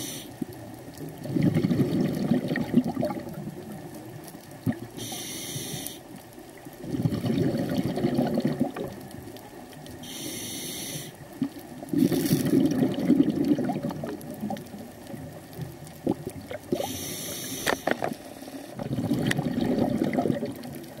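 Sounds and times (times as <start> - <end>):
regulator inhale hiss: 0.0 - 0.4, 5.0 - 6.2, 10.0 - 11.3, 16.7 - 18.8
exhaust bubbling underwater: 1.2 - 3.8, 6.8 - 9.1, 11.4 - 15.3, 15.9 - 16.9, 18.8 - 21.0.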